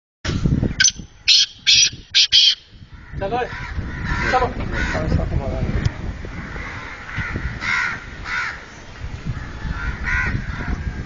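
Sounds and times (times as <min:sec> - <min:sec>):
francolin calling: 0:00.8 - 0:02.7.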